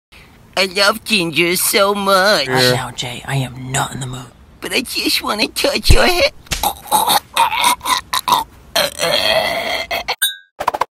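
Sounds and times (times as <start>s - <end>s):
person grunting: 6.5s - 10.2s
long burp-like noise: 6.6s - 10.2s.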